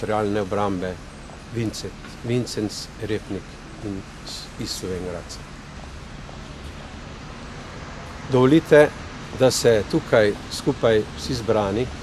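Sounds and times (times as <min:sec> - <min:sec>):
outdoor low rumble and hiss: 0:00.0 - 0:12.0.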